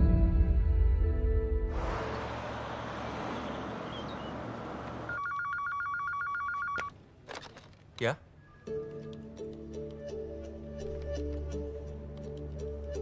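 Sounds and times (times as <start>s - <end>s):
telephone ringing electronic trill: 5.1s - 6.9s.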